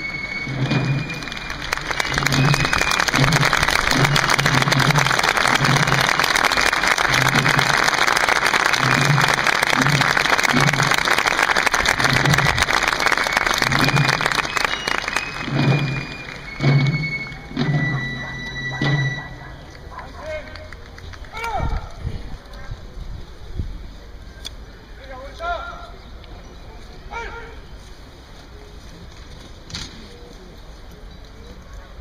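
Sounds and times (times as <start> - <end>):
military drums beating a march: 0.0 - 19.6
crowd applause: 0.0 - 21.4.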